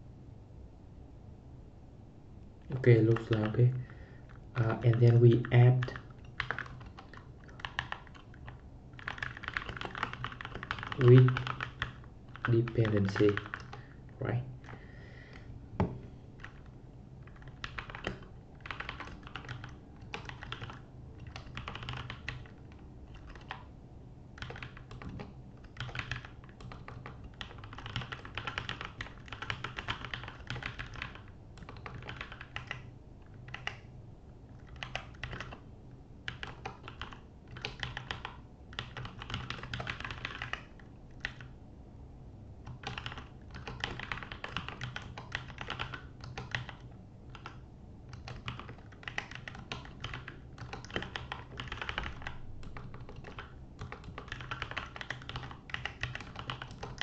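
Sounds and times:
low steady hum: 0:00.0 - 0:57.0
keyboard typing: 0:02.7 - 0:13.9, 0:14.6 - 0:23.7, 0:24.4 - 0:33.9, 0:34.5 - 0:35.6, 0:36.3 - 0:41.5, 0:42.6 - 0:57.0.

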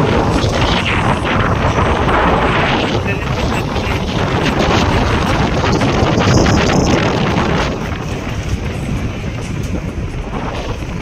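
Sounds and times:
road and wind noise inside vehicle: 0:00.0 - 0:11.0.

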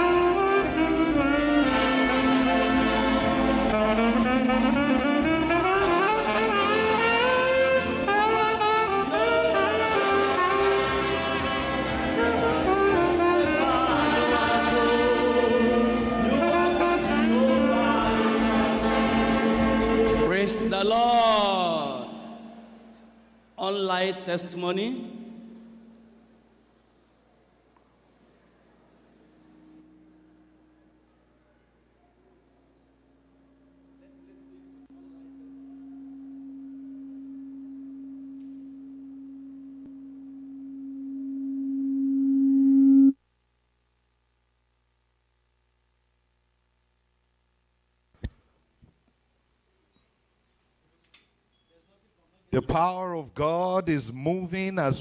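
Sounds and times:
orchestra playing sustained chords: 0:00.0 - 0:26.4
held low tone: 0:33.3 - 0:43.2.

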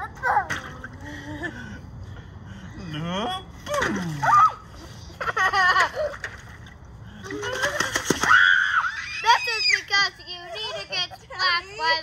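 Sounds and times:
children squealing: 0:08.2 - 0:10.0.

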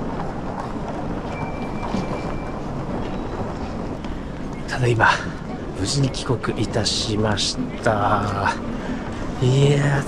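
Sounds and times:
suitcase wheels rolling on stone floor: 0:00.0 - 0:10.0.

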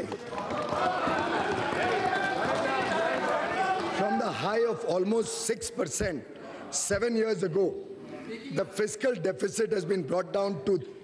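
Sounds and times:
desk thumping applause: 0:00.0 - 0:04.2
crowd cheering: 0:00.0 - 0:04.6.

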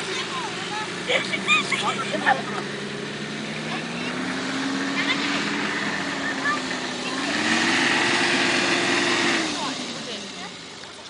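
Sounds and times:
suv engine revving: 0:00.0 - 0:11.0.

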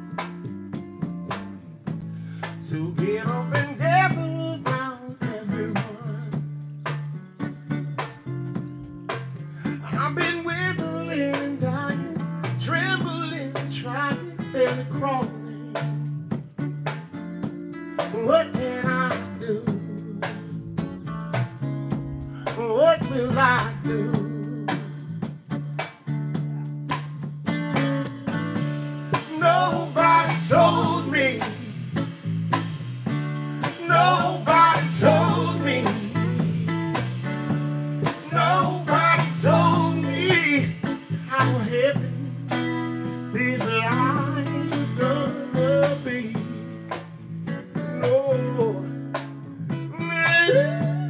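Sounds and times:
electric bass: 0:00.0 - 0:51.0
strummed acoustic guitar: 0:00.0 - 0:51.0
man singing into microphone: 0:02.6 - 0:06.6, 0:09.6 - 0:16.0, 0:18.0 - 0:20.7, 0:22.4 - 0:25.2, 0:29.1 - 0:31.9, 0:33.6 - 0:36.7, 0:38.0 - 0:46.9, 0:47.9 - 0:49.0, 0:49.8 - 0:51.0.

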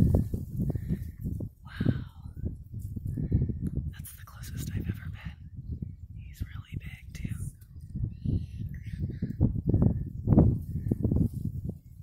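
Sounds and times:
wind buffeting microphone: 0:00.0 - 0:12.0
faint whispering: 0:01.7 - 0:02.5, 0:03.9 - 0:05.5, 0:06.2 - 0:09.5.

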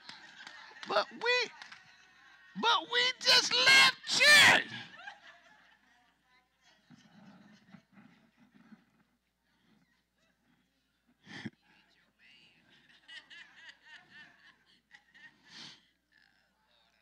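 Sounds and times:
laughter: 0:00.0 - 0:02.6, 0:03.6 - 0:08.8, 0:12.6 - 0:16.6.

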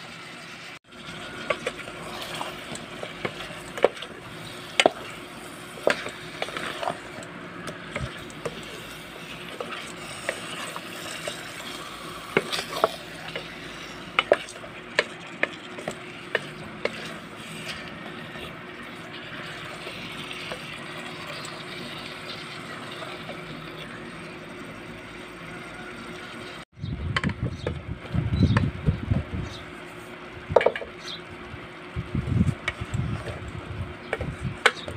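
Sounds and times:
chicken sizzling in a metal pot: 0:00.0 - 0:26.6.

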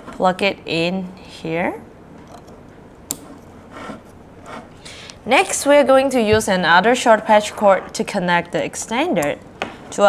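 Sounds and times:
plastic parts rubbing on desk: 0:03.2 - 0:04.8.

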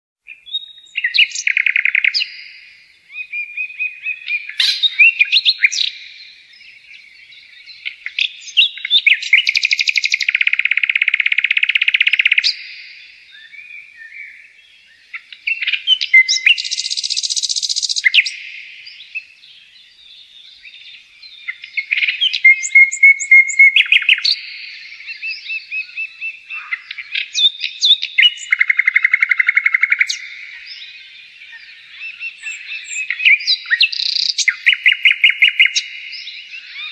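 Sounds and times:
songbirds chirping and trilling: 0:00.2 - 0:36.9.

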